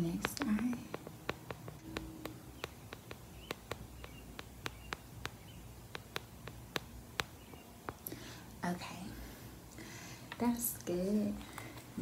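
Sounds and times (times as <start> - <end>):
fingertips tapping on lens: 0.0 - 8.1.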